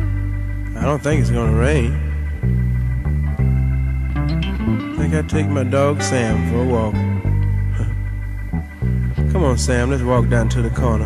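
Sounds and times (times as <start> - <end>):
bass guitar: 0.0 - 11.0
guitar playing held notes: 0.0 - 11.0.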